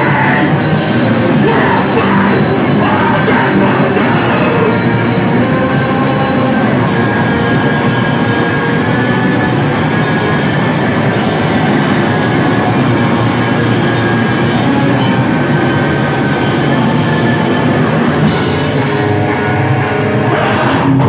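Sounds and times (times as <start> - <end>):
bass guitar: 0.0 - 21.0
distorted electric guitar: 0.0 - 21.0
drum kit: 0.0 - 21.0.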